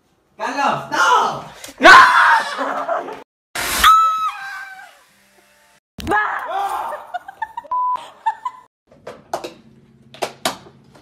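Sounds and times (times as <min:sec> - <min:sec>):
people screaming: 0:01.8 - 0:02.8, 0:03.8 - 0:05.0.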